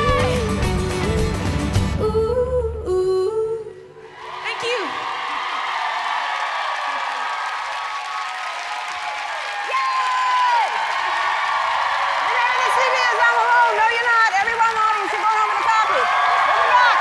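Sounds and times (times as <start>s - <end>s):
audience cheering and applauding: 4.0s - 17.0s
audience whooping: 4.1s - 17.0s.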